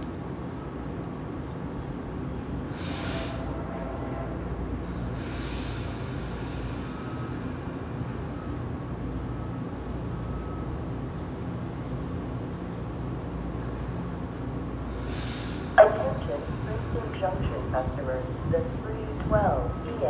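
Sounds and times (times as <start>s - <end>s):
station background noise: 0.0s - 20.0s
train rumbling: 0.0s - 20.0s
public-address announcement: 15.7s - 20.0s.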